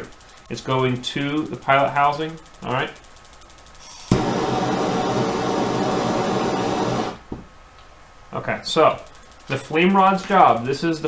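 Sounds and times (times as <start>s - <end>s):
gas torch hissing: 3.8s - 7.2s.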